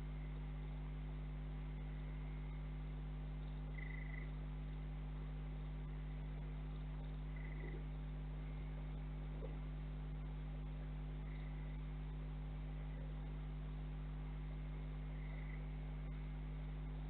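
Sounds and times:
low electrical hum: 0.0 - 17.0
small animal high-pitched calls: 3.7 - 4.4, 7.3 - 7.9.

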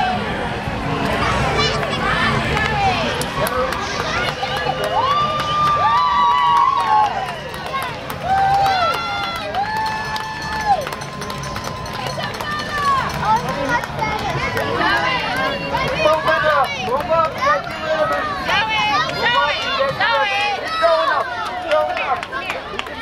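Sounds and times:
crowd chatter: 0.0 - 23.0
crowd cheering and shouting: 0.0 - 23.0.

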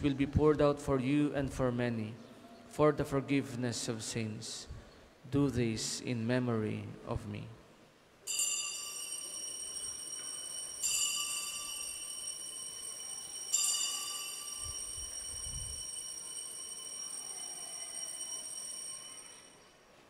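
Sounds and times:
altar bells ringing: 8.3 - 19.7.

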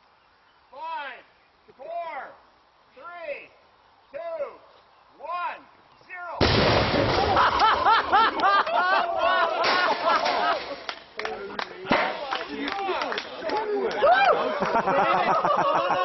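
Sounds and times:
airbag detonating with loud bang: 6.4 - 7.6
people shouting and whooping: 7.2 - 10.7, 12.4 - 16.0.

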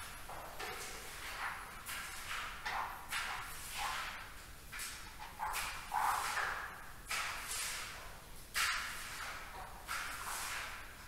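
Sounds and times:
wet mop swishing on floor: 8.6 - 11.0.

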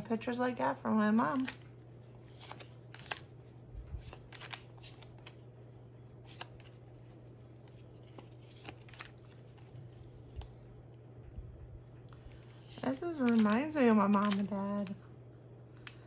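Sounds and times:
low steady hum: 0.0 - 16.0
paper cards flicking: 2.3 - 3.3, 4.0 - 5.4, 12.6 - 15.0.

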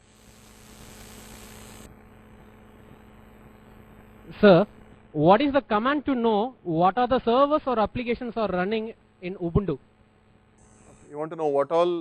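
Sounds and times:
electrical mains hum: 0.0 - 12.0
microphone hiss: 0.0 - 12.0.

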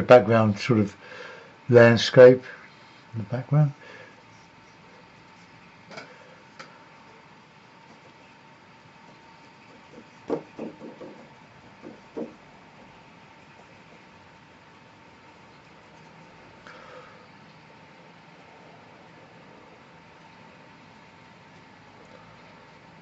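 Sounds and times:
faint steady hum: 0.0 - 23.0
light knocks and taps: 9.8 - 12.4.

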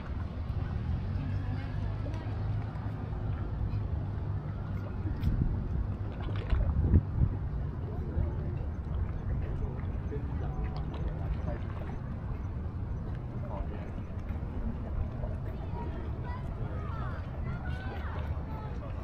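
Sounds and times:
wind rumble on microphone: 0.0 - 19.0.

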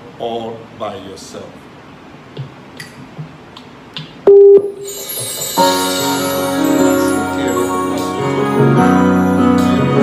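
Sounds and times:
keyboard music: 4.8 - 10.0.

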